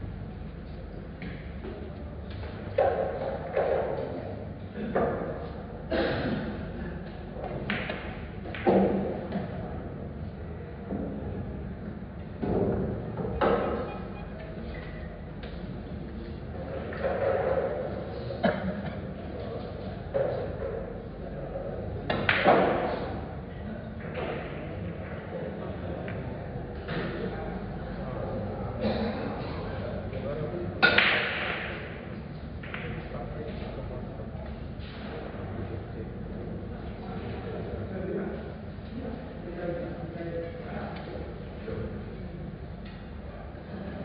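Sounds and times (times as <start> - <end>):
steady room hum: 0.0 - 44.0
pool balls colliding: 30.8 - 33.0.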